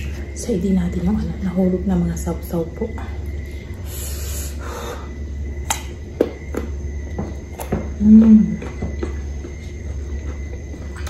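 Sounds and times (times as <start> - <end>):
steady low hum: 0.0 - 11.0
biting and chewing crisp fruit: 5.6 - 11.0.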